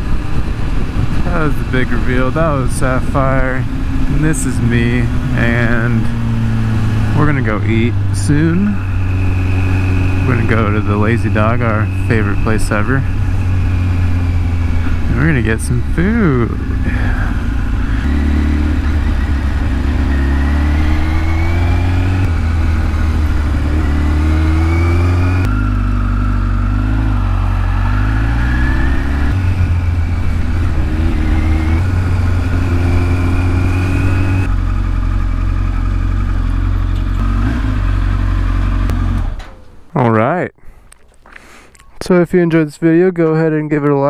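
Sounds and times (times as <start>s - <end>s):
motorcycle engine revving: 0.0s - 39.5s.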